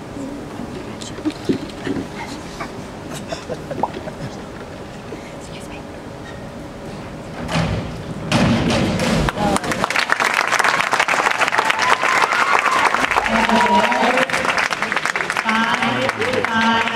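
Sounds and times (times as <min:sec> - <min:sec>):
diving springboard thudding: 0:07.3 - 0:09.6
crowd applause and cheering: 0:09.2 - 0:16.9.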